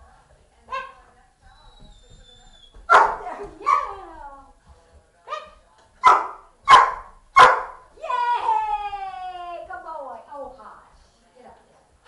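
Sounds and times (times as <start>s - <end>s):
dog barking: 0.7s - 1.0s, 2.8s - 4.0s, 5.3s - 7.8s.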